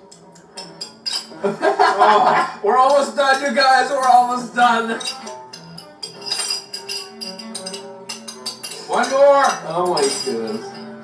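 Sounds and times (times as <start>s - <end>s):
spoon clinking against a jar: 0.0s - 1.4s, 2.8s - 11.0s
music: 0.0s - 11.0s.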